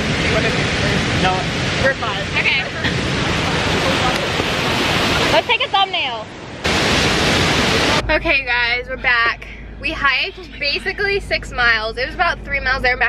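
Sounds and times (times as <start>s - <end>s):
waterfall rushing: 0.0s - 8.0s.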